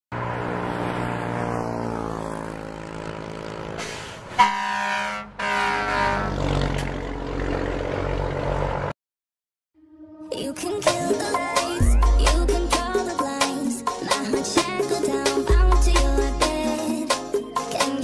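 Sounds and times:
truck driving past: 0:00.1 - 0:09.0
truck horn blast: 0:02.4 - 0:06.8.

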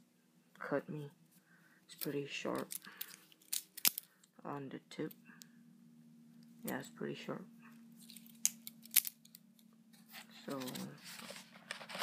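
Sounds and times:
cardboard rustling: 0:10.0 - 0:12.0.

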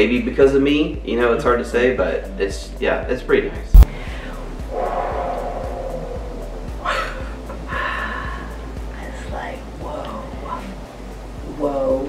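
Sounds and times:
quiet instrumental music: 0:00.0 - 0:12.0.

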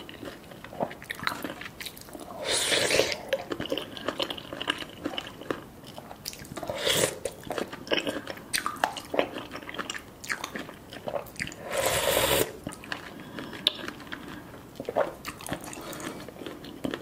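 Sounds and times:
person chewing with wet mouth sounds: 0:00.0 - 0:17.0.

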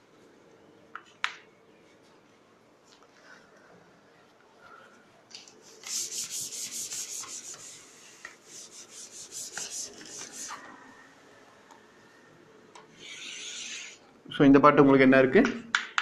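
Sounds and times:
duster wiping a blackboard: 0:05.7 - 0:10.6.

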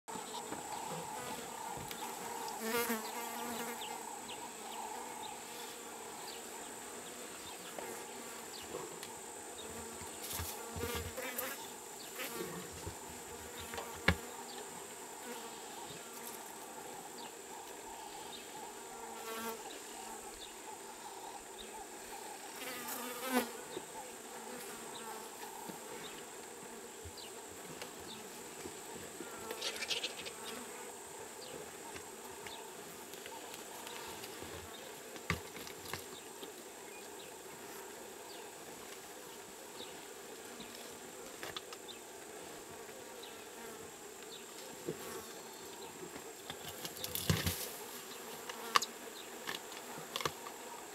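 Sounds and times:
flies buzzing: 0:00.1 - 0:50.9.

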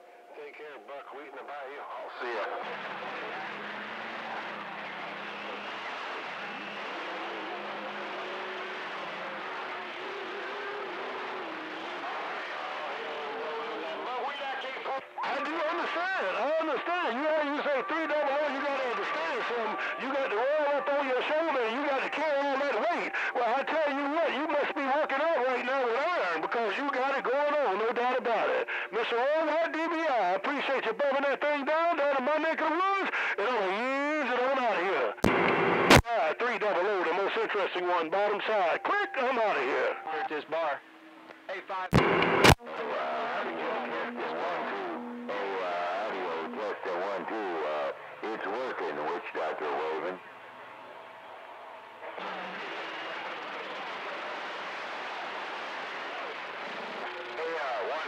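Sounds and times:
garbled radio voices: 0:00.4 - 0:40.9, 0:41.5 - 0:50.3, 0:55.6 - 0:58.0
static bursts: 0:02.2 - 0:29.0, 0:33.1 - 0:58.0.

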